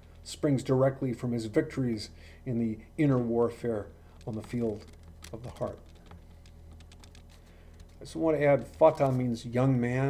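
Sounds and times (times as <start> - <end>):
low steady hum: 0.0 - 10.0
light clicks and taps: 4.2 - 9.3.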